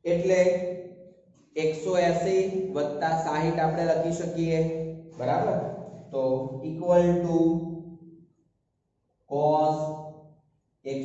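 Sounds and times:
man's voice: 0.0s - 0.6s, 1.6s - 7.6s, 9.3s - 9.9s.

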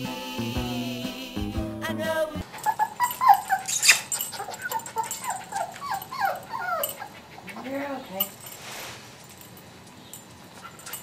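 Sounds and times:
puppy whimpering: 2.4s - 8.4s.

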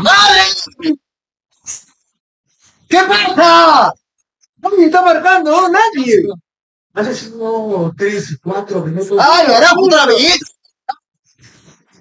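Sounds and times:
man's voice: 2.9s - 4.0s, 4.6s - 6.4s, 7.0s - 10.5s.

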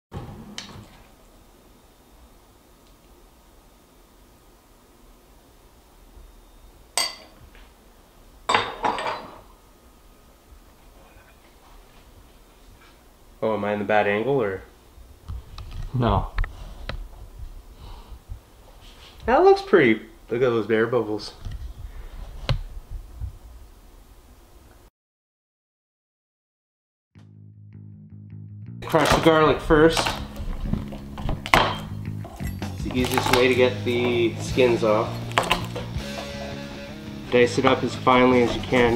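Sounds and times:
spoon clinking on ceramic: 7.0s - 7.3s.

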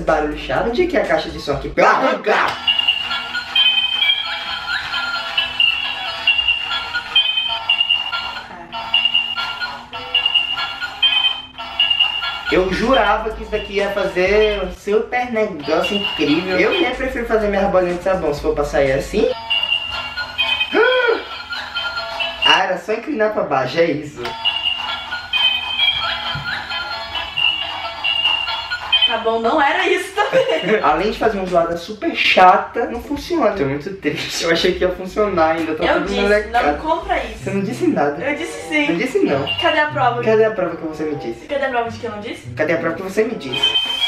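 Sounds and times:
toy electronic beeping tune: 2.6s - 14.8s, 15.6s - 18.0s, 19.3s - 22.6s, 24.3s - 29.7s, 30.3s - 31.1s, 38.5s - 40.3s, 43.5s - 44.0s.

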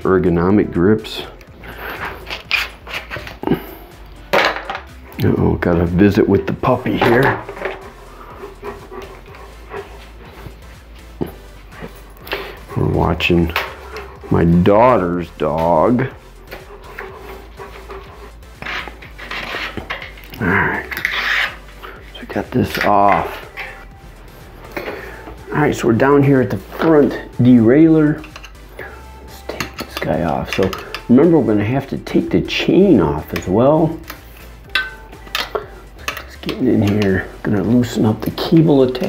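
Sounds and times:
grip rubbing on handlebar: 1.4s - 3.5s, 6.6s - 39.0s
metal wrench clinking: 28.2s - 28.7s, 29.5s - 31.1s, 33.3s - 37.2s.

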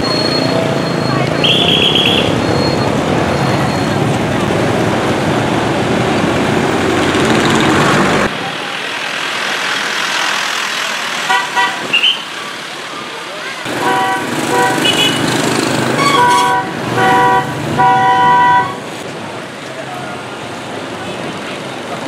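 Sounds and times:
trucks and motorbikes passing: 0.0s - 22.0s
vehicle horn beeps: 0.4s - 4.0s, 13.8s - 15.2s, 16.0s - 18.9s.

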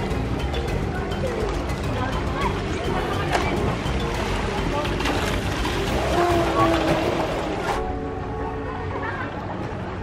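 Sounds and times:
water splashing from swimming: 0.0s - 7.8s
background music: 0.0s - 10.0s.

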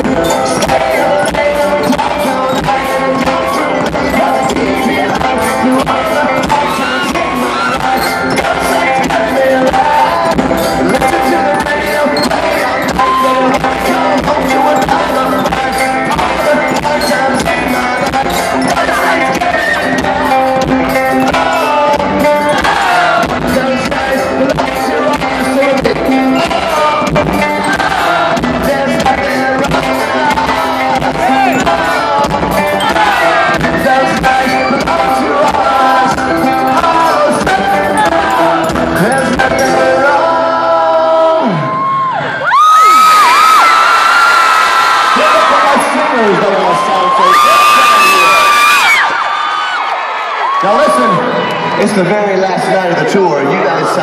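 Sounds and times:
driving drum beat: 0.0s - 41.0s
person singing: 0.0s - 41.9s
male lead vocal: 0.0s - 49.2s
live rock band: 0.0s - 54.0s.

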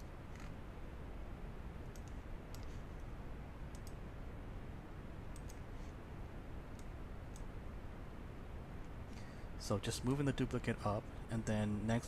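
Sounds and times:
low room hum: 0.0s - 12.0s
computer mouse clicks: 1.8s - 2.8s, 3.7s - 4.0s, 5.3s - 5.7s, 6.7s - 7.5s.

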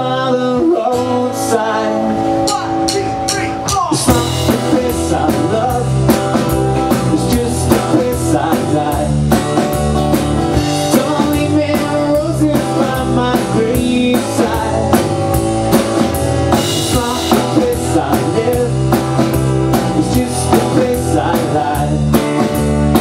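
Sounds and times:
bass guitar: 0.0s - 23.0s
electric guitar: 0.0s - 23.0s
strummed acoustic guitar: 0.0s - 23.0s
drum kit steady beat: 2.3s - 23.0s.

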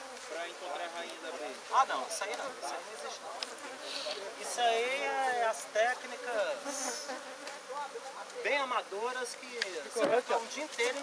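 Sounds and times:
honeybees buzzing: 0.0s - 11.0s
bees flying close past: 2.4s - 8.4s.

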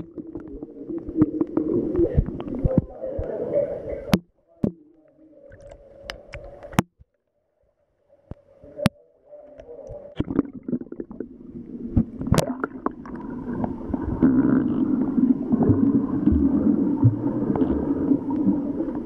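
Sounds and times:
underwater clicks and knocks: 0.0s - 3.4s, 4.0s - 7.2s, 11.9s - 14.8s
underwater rumble and gurgle: 0.0s - 19.0s.

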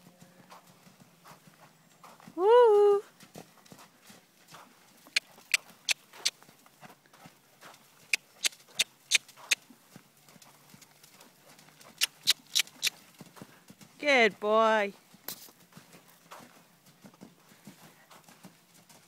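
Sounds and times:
horse hoofbeats trotting: 0.0s - 19.0s.

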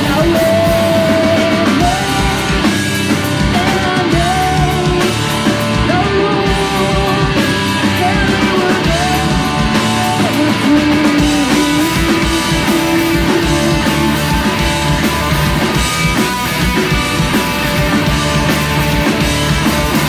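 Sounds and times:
drum kit beat: 0.0s - 20.0s
electric guitars: 0.0s - 20.0s
punk rock band playing: 0.0s - 20.0s.

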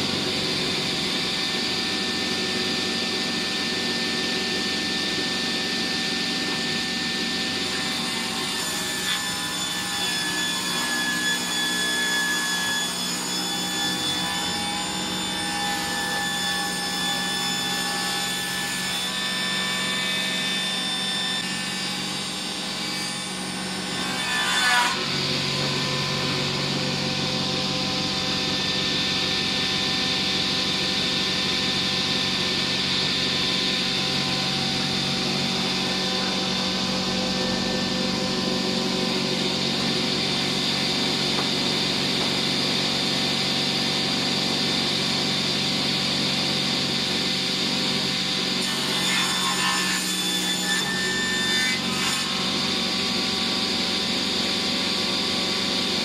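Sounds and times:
circular saw cutting wood: 0.0s - 56.0s.

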